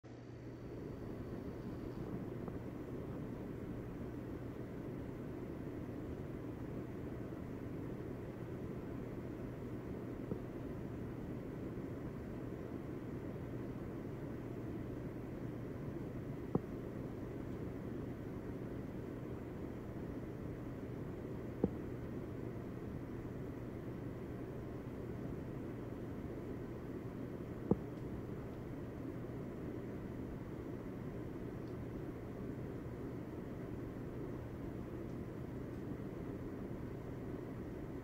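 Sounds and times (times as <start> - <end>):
faint steady hum: 0.0 - 38.0
low rushing white noise: 0.1 - 38.0
soft clicks: 31.6 - 31.9.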